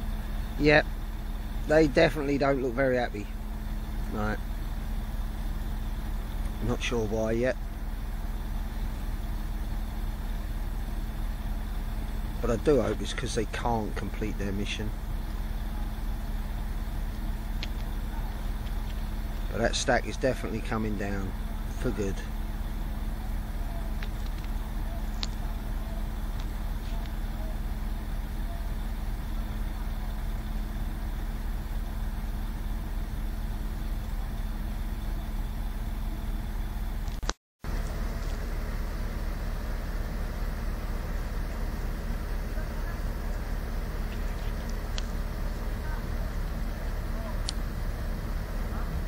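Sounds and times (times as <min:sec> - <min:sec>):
heavy machinery engine drone: 0:00.0 - 0:49.0
faint clicks: 0:25.2 - 0:25.5.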